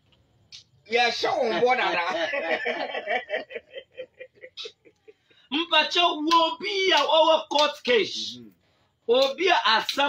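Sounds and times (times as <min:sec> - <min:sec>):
man chuckling: 0:02.0 - 0:05.3.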